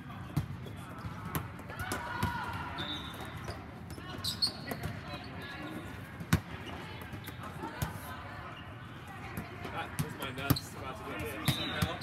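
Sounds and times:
players' voices: 0:00.0 - 0:12.0
shoe squeaks: 0:02.8 - 0:05.8, 0:06.6 - 0:07.6, 0:10.6 - 0:12.0.

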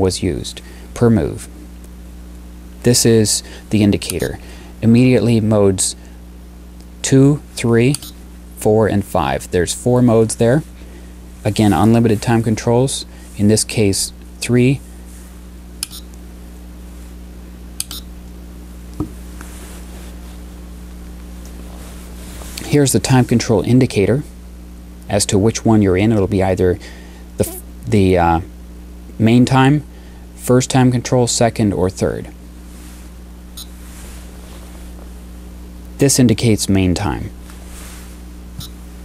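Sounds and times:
steady low hum: 0:00.0 - 0:39.0
chess clock button clicks: 0:15.8 - 0:16.1, 0:17.8 - 0:18.0.

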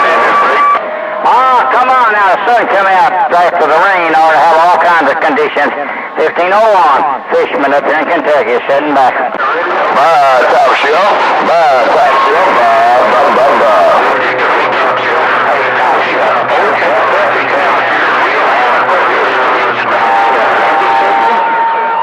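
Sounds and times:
steady whistle tone: 0:00.0 - 0:01.3
garbled radio voices: 0:00.0 - 0:22.0
heavy radio static: 0:00.0 - 0:22.0.

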